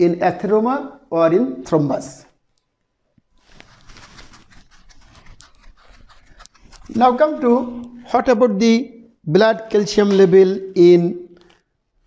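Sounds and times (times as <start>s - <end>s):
eraser scrubbing whiteboard: 3.4s - 7.7s.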